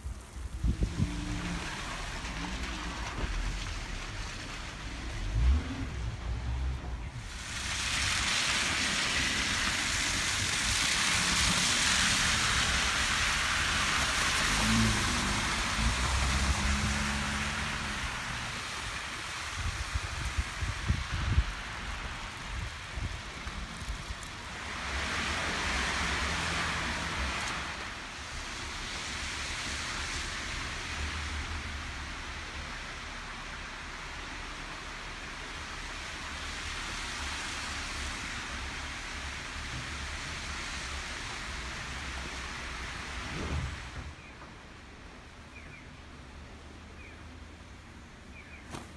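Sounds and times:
car tyres hissing through slush: 0.0s - 44.3s
low engine rumble: 0.0s - 48.9s.

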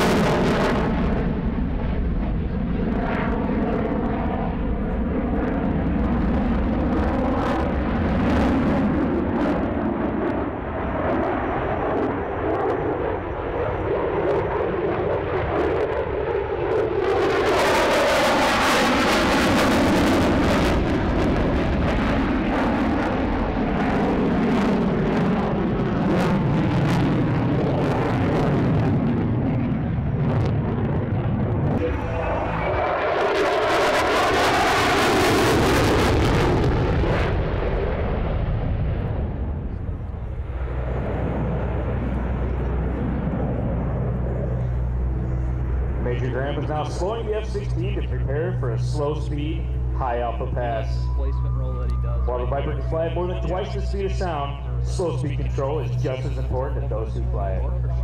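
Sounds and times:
jet roar with afterburner: 0.0s - 58.0s.

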